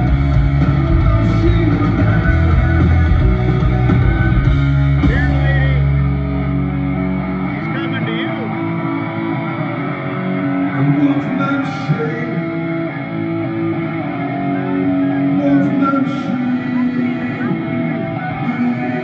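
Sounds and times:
drums: 0.0s - 19.0s
electric guitars: 0.0s - 19.0s
heavy bass: 0.0s - 19.0s.

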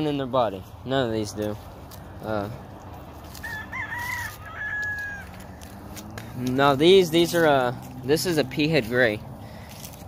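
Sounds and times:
rooster crowing: 3.2s - 5.9s.

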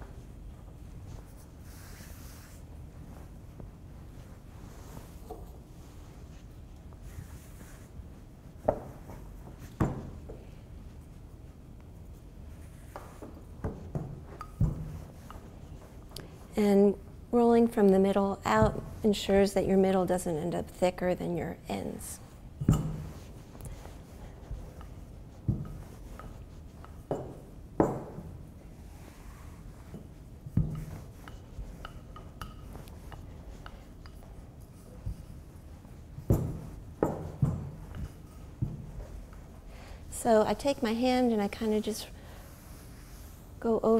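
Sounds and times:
rolling pin rubbing dough: 0.3s - 9.8s, 10.8s - 43.9s
rolling pin thumping dough: 12.8s - 16.0s, 22.5s - 28.8s, 29.7s - 39.6s.

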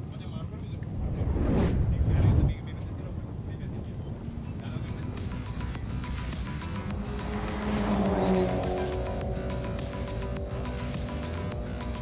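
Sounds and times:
race car engines rumbling: 0.0s - 12.0s
music: 4.1s - 12.0s.

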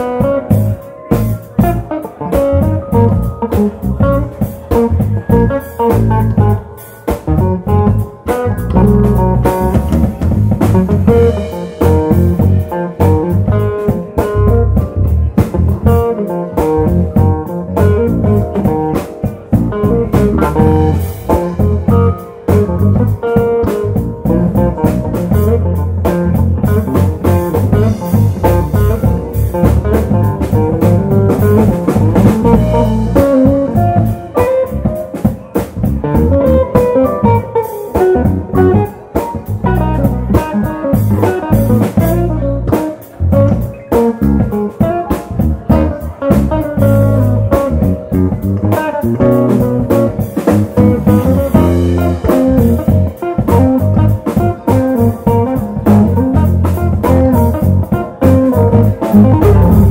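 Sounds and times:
drum kit: 0.0s - 59.9s
electric bass: 0.0s - 59.9s
electric guitar melody: 0.0s - 59.9s
keyboards: 0.0s - 59.9s.

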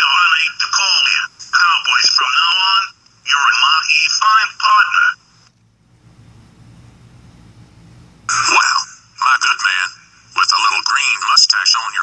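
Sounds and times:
faint low hum: 0.0s - 12.0s
cartoon voice speaking: 8.3s - 9.8s.

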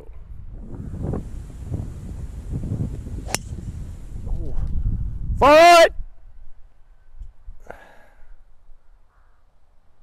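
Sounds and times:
wind rumble on microphone: 0.0s - 6.6s
golf club striking ball: 3.2s - 3.7s.

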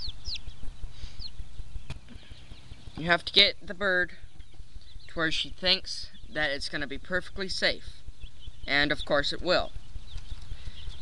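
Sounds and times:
chick peeping: 0.0s - 11.0s.

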